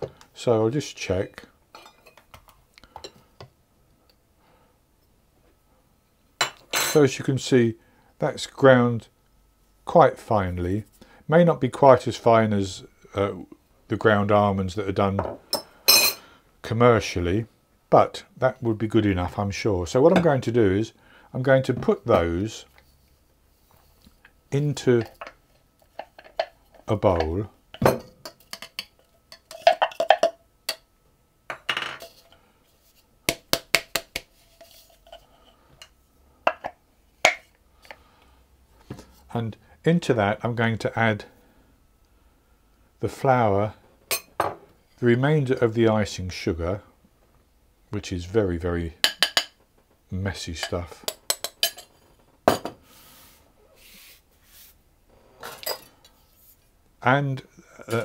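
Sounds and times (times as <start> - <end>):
utensil tapping and scraping bowls: 1.8 - 3.5, 23.7 - 30.8, 31.5 - 38.0, 50.6 - 52.8.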